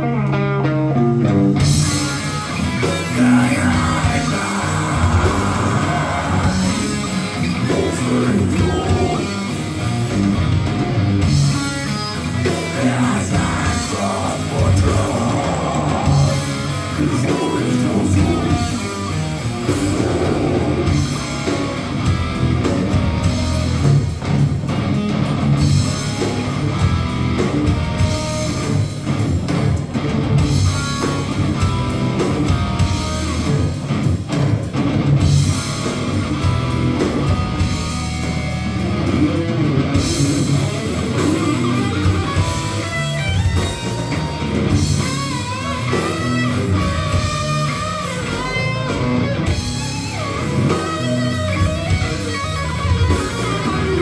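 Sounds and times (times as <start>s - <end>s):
death metal band playing live: 0.0s - 54.0s
high guitar melody with bends: 0.0s - 54.0s.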